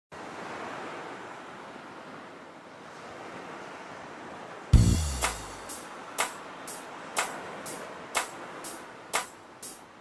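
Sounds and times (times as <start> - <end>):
steady rushing noise: 4.8 - 10.0.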